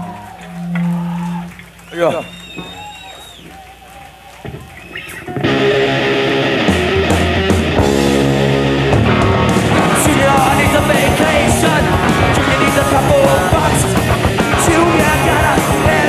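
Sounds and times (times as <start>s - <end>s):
punk rock band playing live: 5.3s - 16.0s.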